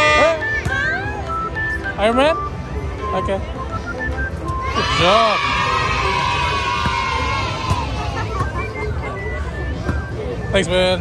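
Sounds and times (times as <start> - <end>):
crowd noise: 0.0 - 11.0
fairground music: 0.0 - 11.0
voices cheering: 4.6 - 8.2.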